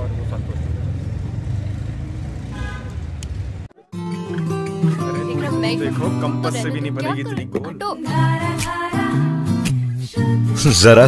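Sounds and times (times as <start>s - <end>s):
traffic rumble: 0.0s - 8.3s
vehicle horn: 2.5s - 3.1s.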